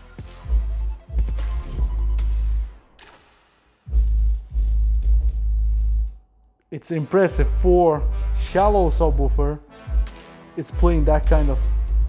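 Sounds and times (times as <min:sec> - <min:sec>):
deep bass from subwoofer: 0:03.9 - 0:06.2, 0:10.8 - 0:12.0.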